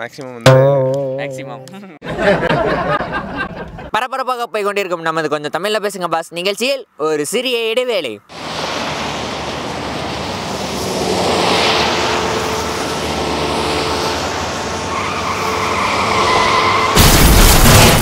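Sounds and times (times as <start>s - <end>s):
held tone: 0.5s - 2.0s
passing vehicles rushing: 8.3s - 17.0s.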